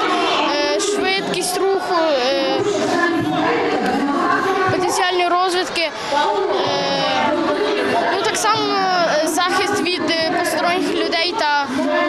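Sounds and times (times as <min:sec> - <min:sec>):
crowd chatter in echoing hall: 0:00.0 - 0:12.0.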